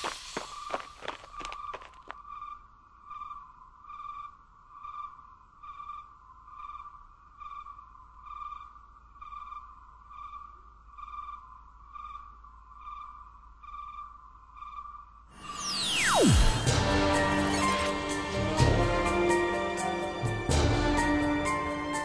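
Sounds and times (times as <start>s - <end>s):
pulsing electronic tone: 15.3s - 17.9s.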